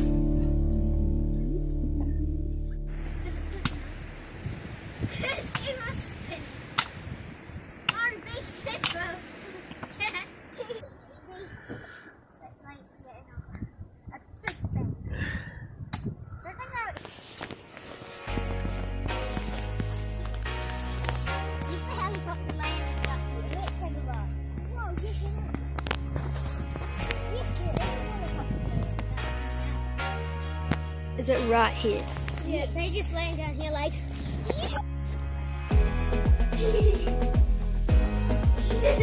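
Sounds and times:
background music: 0.0s - 4.2s, 17.4s - 39.0s
children's voices: 3.0s - 3.9s, 5.0s - 6.8s, 7.8s - 15.2s, 16.2s - 17.1s, 21.5s - 25.6s, 27.0s - 29.7s.

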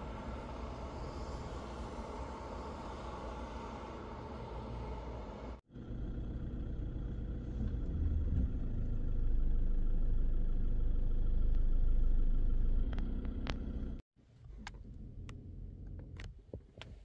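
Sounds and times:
low outdoor rumble: 0.0s - 16.8s.

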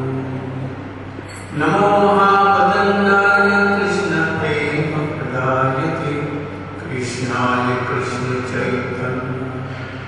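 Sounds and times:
person chanting mantra: 0.0s - 0.8s, 1.4s - 10.0s.

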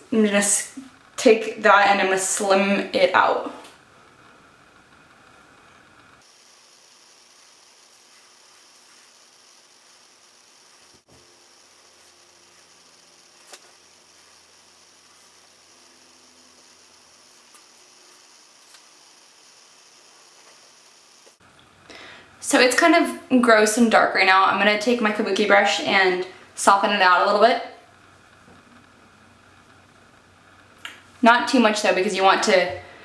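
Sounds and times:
faint hiss of room tone: 0.0s - 33.0s.

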